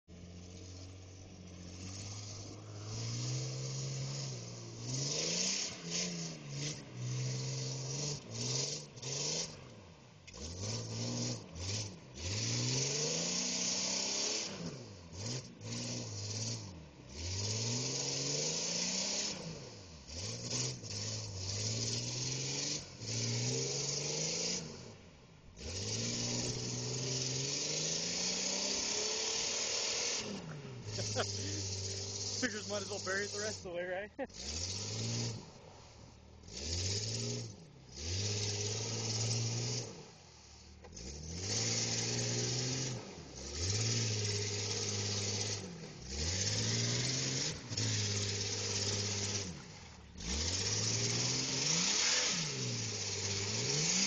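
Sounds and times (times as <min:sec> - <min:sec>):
engine revving: 0:00.0 - 0:54.0
wheels spinning in mud: 0:25.6 - 0:35.5, 0:40.8 - 0:54.0.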